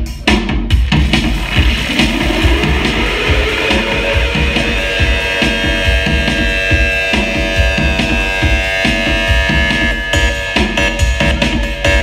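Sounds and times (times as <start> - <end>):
steady drumming: 0.0 - 12.0
ringing electric guitar chords: 0.9 - 10.9.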